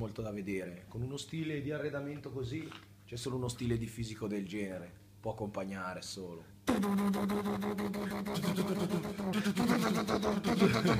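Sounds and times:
man's voice with buzzing rattle: 0.0s - 10.9s.

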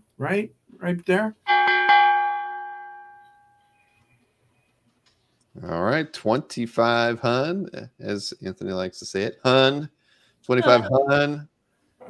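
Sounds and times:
bell-like chime ringing: 1.5s - 3.8s.

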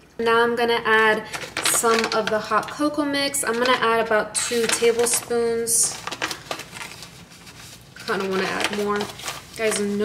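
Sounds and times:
foil pouch crinkling: 4.5s - 10.0s.

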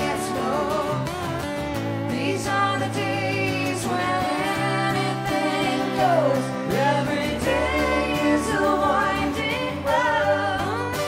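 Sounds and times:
person singing: 0.0s - 1.2s, 2.1s - 11.0s
live band music: 0.0s - 11.0s.

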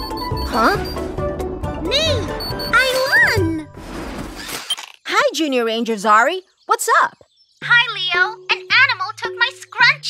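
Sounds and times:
high beep: 0.0s - 1.1s, 2.4s - 3.4s
cartoon background music: 0.0s - 4.2s, 7.6s - 10.0s.

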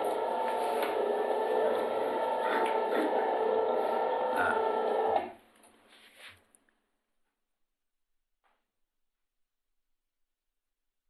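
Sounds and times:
mechanical whir: 0.0s - 5.3s.

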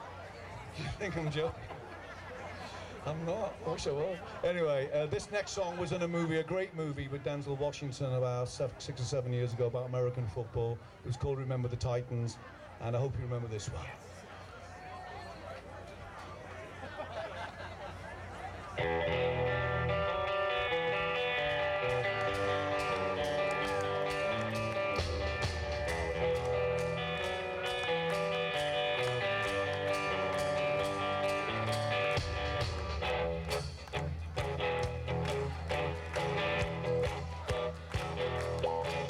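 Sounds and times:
live rock band playing: 18.8s - 39.0s
clap-like beats: 21.1s - 39.0s.

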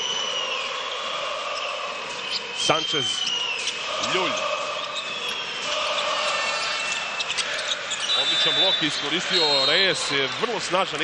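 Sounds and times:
crowd noise: 0.0s - 11.0s
sneaker squeaks: 1.5s - 10.5s.

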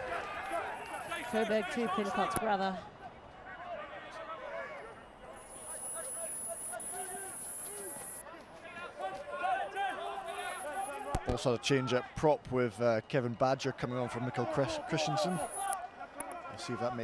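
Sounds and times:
distant players calling: 14.7s - 15.8s.

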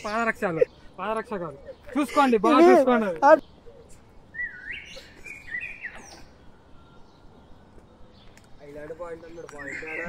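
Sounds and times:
faint forest background: 0.0s - 10.0s.

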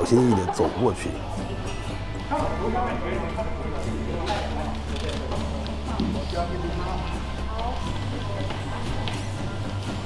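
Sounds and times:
people talking quietly: 0.0s - 10.0s
soft background music: 0.0s - 10.0s.

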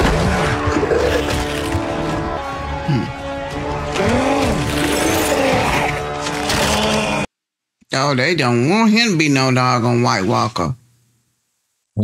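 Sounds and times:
soundtrack music: 0.0s - 7.3s.

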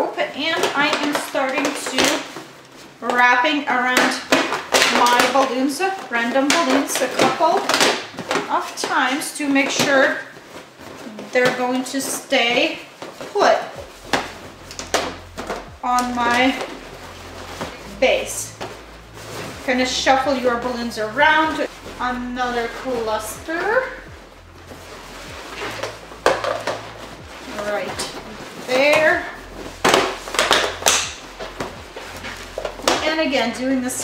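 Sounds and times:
latex balloons rubbing and knocking: 0.0s - 34.0s.

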